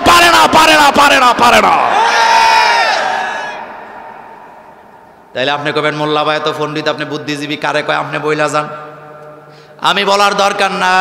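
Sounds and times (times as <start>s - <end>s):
man preaching through a pa system: 0.0s - 1.9s, 5.3s - 9.2s, 9.8s - 11.0s.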